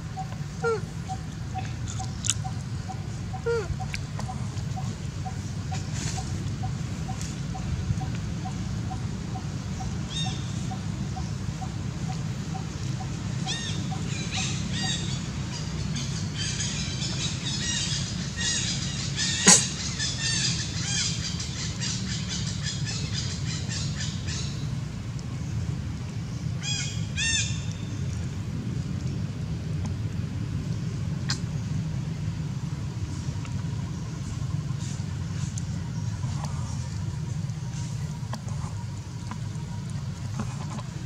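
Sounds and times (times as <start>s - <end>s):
steady low hum: 0.0s - 41.0s.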